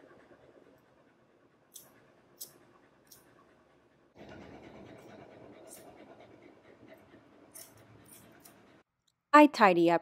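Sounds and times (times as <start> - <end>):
dog panting: 0.0 - 8.9.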